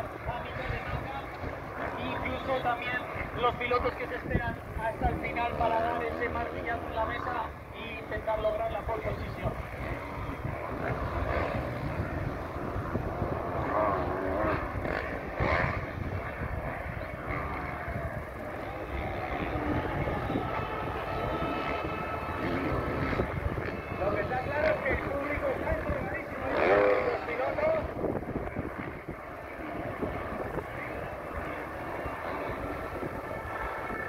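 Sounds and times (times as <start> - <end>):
motocross bike engines revving: 0.0 - 34.0.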